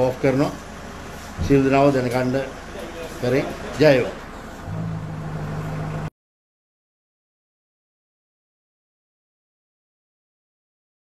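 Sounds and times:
low mechanical hum: 0.0s - 6.1s.

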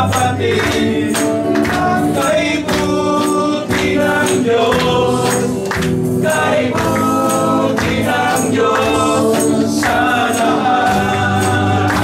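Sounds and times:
congregation singing: 0.0s - 12.0s
electric guitar: 0.0s - 12.0s
man's voice leading singing: 0.0s - 12.0s.

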